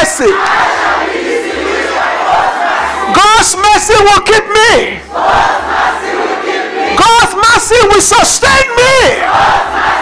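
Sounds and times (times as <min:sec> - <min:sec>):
congregation speaking in unison: 0:00.0 - 0:10.0.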